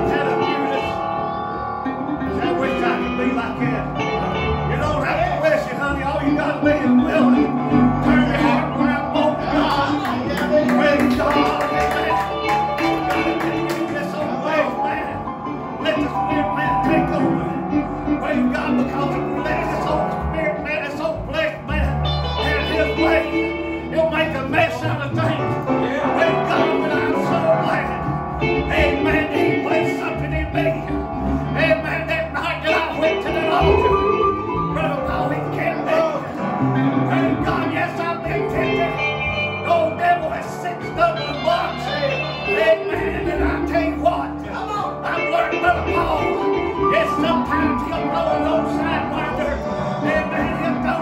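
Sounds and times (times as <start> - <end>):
church band with electric guitar: 0.0 - 51.0
man speaking into a microphone: 4.7 - 12.5, 13.8 - 36.4, 37.1 - 51.0.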